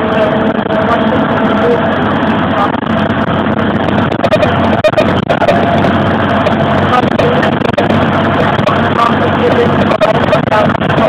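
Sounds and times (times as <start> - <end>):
bus engine drone: 0.0 - 11.0.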